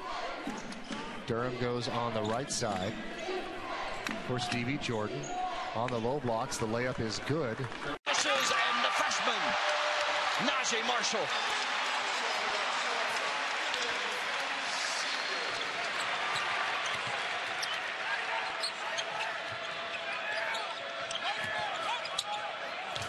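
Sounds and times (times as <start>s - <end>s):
arena crowd noise: 0.0s - 23.0s.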